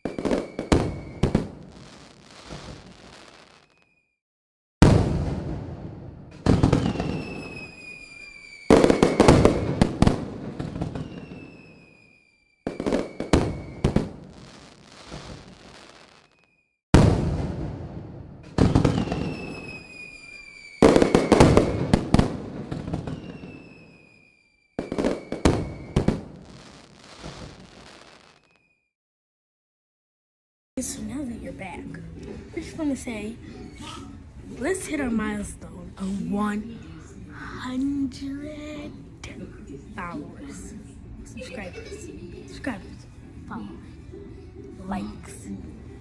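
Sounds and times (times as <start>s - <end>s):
falling whistles: 0.0s - 1.8s, 3.4s - 4.2s, 6.7s - 9.9s, 10.8s - 15.4s, 16.0s - 16.8s, 18.8s - 21.9s, 22.9s - 26.4s, 28.2s - 28.9s
firework bangs and crackling: 0.0s - 4.0s, 4.8s - 28.7s.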